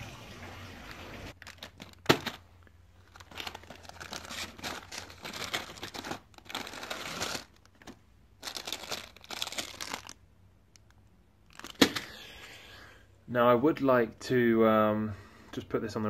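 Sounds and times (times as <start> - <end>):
paper bag crinkling: 1.3 - 10.2, 10.8 - 12.2.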